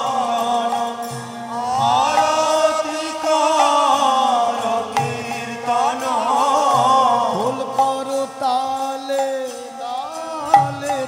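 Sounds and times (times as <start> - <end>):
harmonium chords: 0.0 - 11.0
man singing chant-like melody: 0.0 - 11.0.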